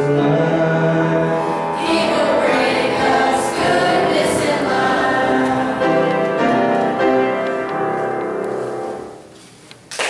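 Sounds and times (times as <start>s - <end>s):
choir singing: 0.0s - 7.4s.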